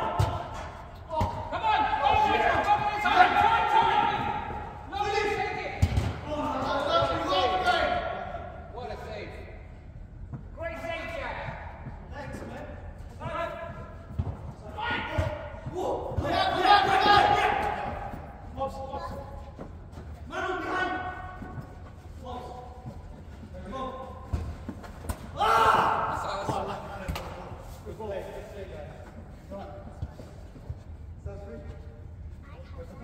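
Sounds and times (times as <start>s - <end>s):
players shouting: 0.0s - 8.4s, 14.6s - 18.4s, 25.3s - 26.9s.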